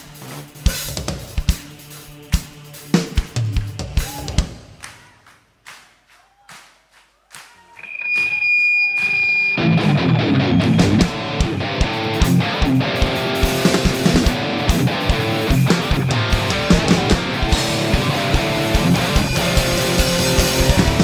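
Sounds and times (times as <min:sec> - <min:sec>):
drum kit: 0:00.0 - 0:05.2, 0:09.0 - 0:21.0
held high note: 0:07.8 - 0:12.2
electric guitar strumming: 0:07.8 - 0:21.0.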